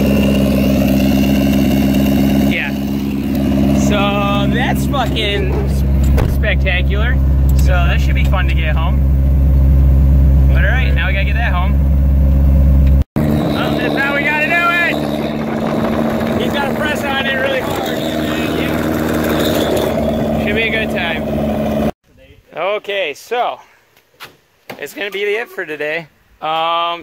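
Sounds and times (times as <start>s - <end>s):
car engine and road noise: 0.0s - 22.0s
men talking: 2.5s - 2.8s, 3.7s - 9.0s, 10.5s - 11.8s, 13.5s - 15.2s, 16.1s - 18.9s, 20.3s - 21.2s, 22.2s - 23.8s, 24.7s - 27.0s.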